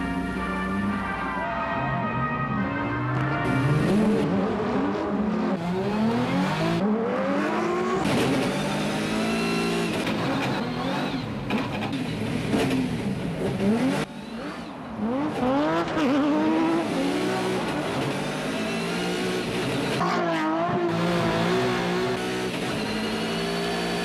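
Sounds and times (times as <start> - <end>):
race car engines revving: 0.0 - 24.0.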